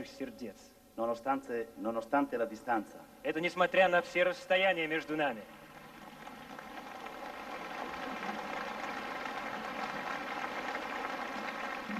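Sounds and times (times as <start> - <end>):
audience applauding: 5.5 - 11.9.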